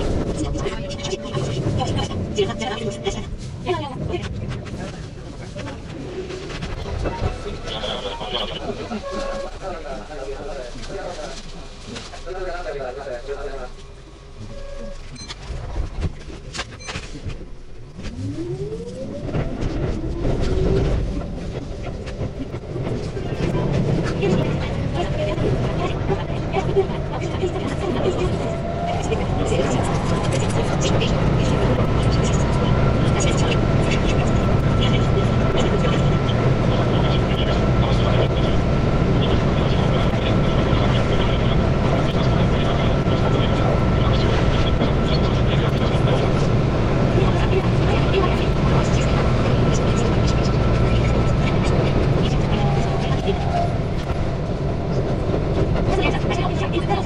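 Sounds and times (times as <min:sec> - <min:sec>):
wheels rumbling on track: 0:00.0 - 0:57.0.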